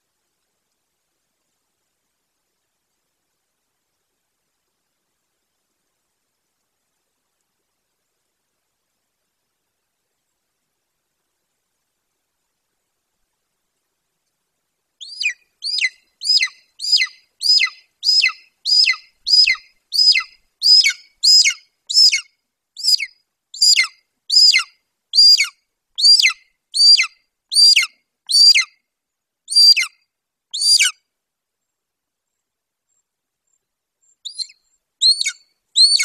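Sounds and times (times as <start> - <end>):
eagle whistled calls: 15.0 - 28.7, 29.5 - 30.0, 30.6 - 31.0, 34.2 - 36.0.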